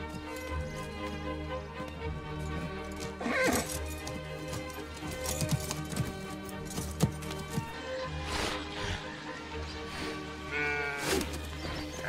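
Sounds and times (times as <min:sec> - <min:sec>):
sustained film score music: 0:00.0 - 0:12.0
horse whinnying: 0:03.1 - 0:04.0.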